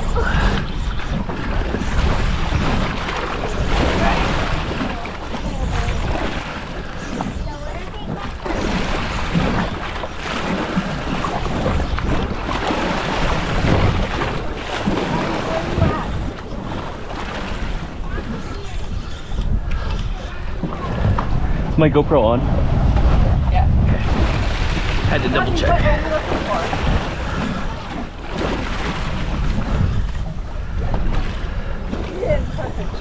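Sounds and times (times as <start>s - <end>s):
choppy water against boat: 0.0s - 33.0s
wind buffeting microphone: 0.0s - 33.0s.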